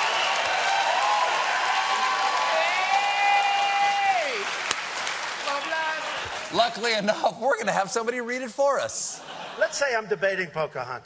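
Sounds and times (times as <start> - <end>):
audience applauding and cheering: 0.0 - 7.4
person whooping: 0.6 - 4.5.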